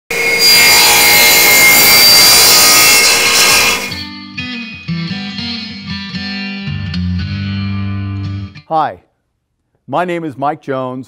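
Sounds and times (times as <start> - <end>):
power tool cutting wood: 0.1 - 4.1.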